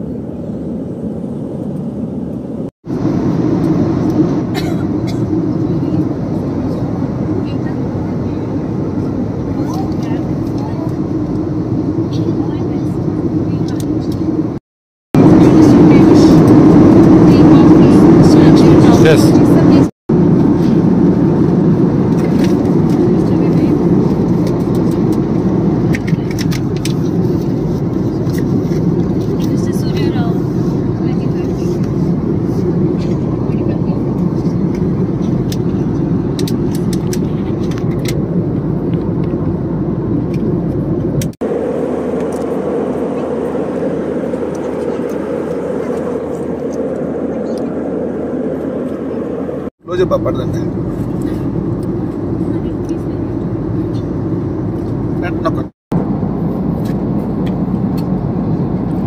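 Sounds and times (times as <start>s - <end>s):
airliner cabin drone: 0.0s - 14.6s, 15.2s - 59.0s.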